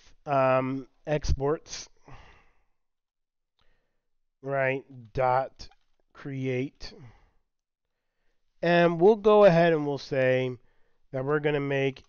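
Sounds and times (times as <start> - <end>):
man sighing: 2.0 - 2.6.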